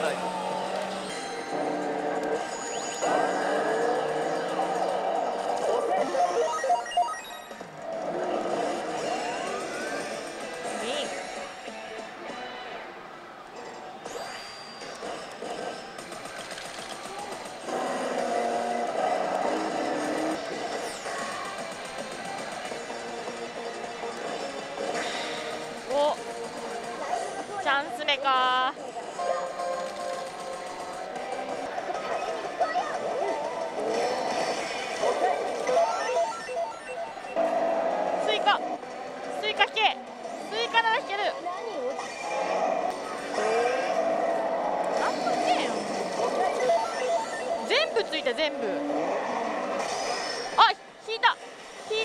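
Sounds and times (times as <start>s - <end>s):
electronic effects: 0.0s - 11.6s, 14.0s - 38.6s, 41.9s - 48.4s
slot machine music: 0.0s - 12.8s, 14.0s - 37.4s, 45.2s - 48.4s
electronic jingle beeps: 6.1s - 7.6s.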